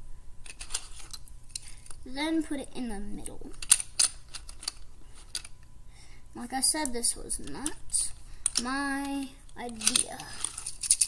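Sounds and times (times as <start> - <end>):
plastic bricks clicking: 3.6 - 5.5, 9.7 - 11.0.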